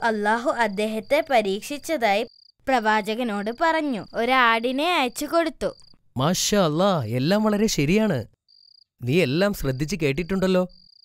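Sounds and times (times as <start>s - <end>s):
cricket trill: 0.1s - 11.0s
person speaking: 9.0s - 10.7s.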